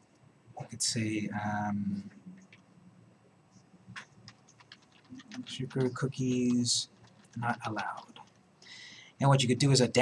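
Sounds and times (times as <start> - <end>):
typing on computer keyboard: 3.9 - 8.4.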